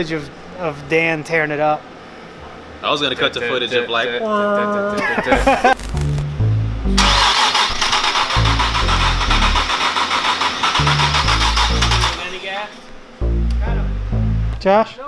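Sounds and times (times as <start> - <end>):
background music with bass line: 5.4 - 7.2, 8.4 - 9.6, 10.8 - 12.1, 13.2 - 14.7
engine starter cranking: 7.0 - 12.4.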